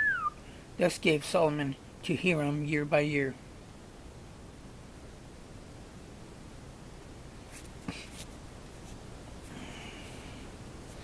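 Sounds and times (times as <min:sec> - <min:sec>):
thin pages rustling: 0:07.4 - 0:09.0.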